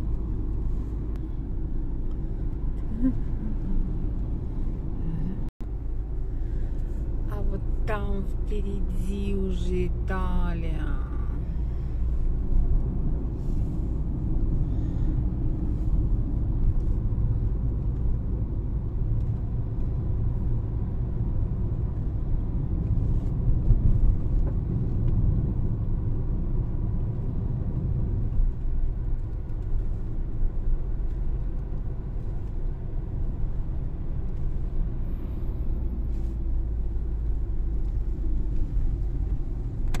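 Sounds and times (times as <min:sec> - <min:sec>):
car driving on paved road: 0:00.0 - 0:40.0.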